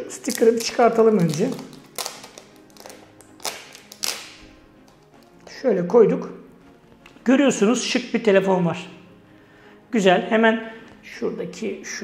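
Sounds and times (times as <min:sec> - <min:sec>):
faint background music: 0:00.0 - 0:12.0.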